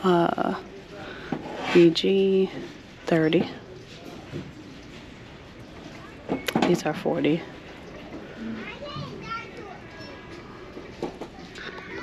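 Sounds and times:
faint background voices: 0:00.0 - 0:12.0
child's voice: 0:08.5 - 0:10.6.

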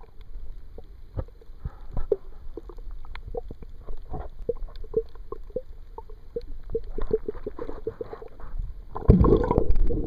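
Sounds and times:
muffled underwater rumble: 0:00.0 - 0:10.0.

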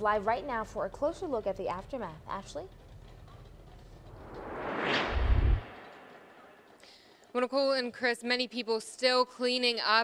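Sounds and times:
whoosh: 0:04.0 - 0:06.8.

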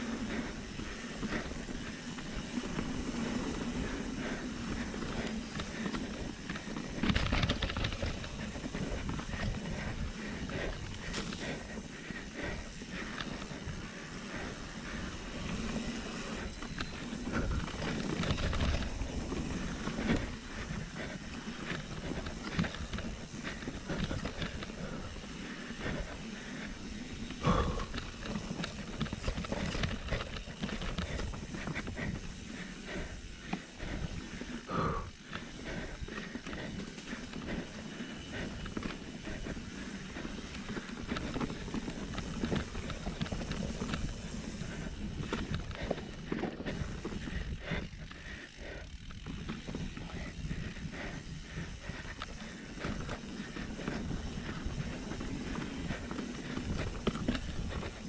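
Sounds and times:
bike jolts: 0:00.0 - 0:58.0
bike rattling over bumps: 0:00.0 - 0:58.0
bike tyre rumble: 0:00.0 - 0:58.0.

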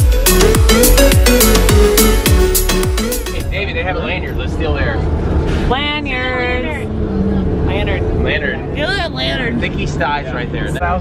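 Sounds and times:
bus engine rumble: 0:03.1 - 0:11.0.

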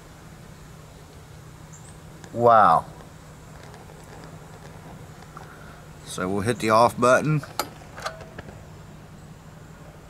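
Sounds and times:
heater control clicks: 0:07.4 - 0:08.6.

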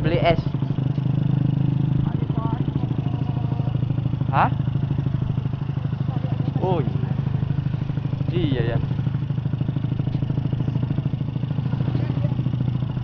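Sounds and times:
motorcycle engine running: 0:00.0 - 0:13.0.

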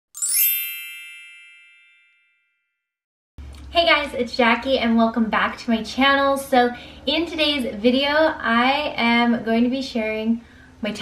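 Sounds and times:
bright chime ringing: 0:00.1 - 0:02.7.

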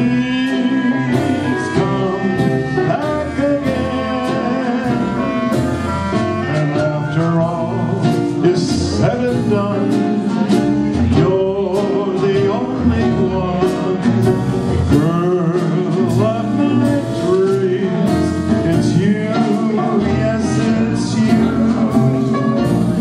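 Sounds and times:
trumpet: 0:00.0 - 0:10.5, 0:14.7 - 0:23.0
banjo: 0:00.0 - 0:23.0
clarinet: 0:00.0 - 0:23.0
drums: 0:00.0 - 0:23.0
piano: 0:00.0 - 0:23.0
string bass: 0:00.0 - 0:23.0.

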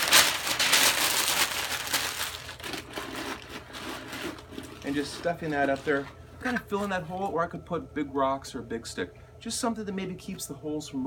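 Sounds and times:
paper being crumpled: 0:00.0 - 0:06.0.

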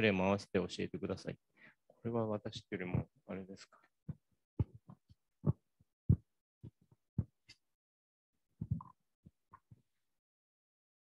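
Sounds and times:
person speaking: 0:02.0 - 0:03.7
microphone handling thumps: 0:04.1 - 0:06.2.

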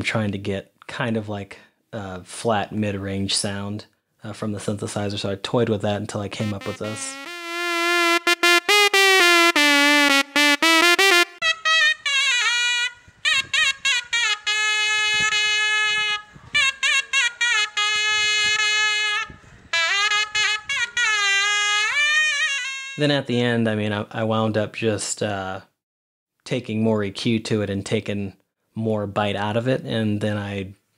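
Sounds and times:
shehnai playing a melody: 0:06.4 - 0:11.4
synthesized shehnai phrase: 0:06.4 - 0:11.4.

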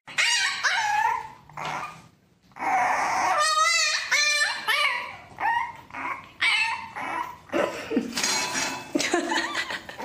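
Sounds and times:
puppy yipping and whining: 0:00.1 - 0:07.6.

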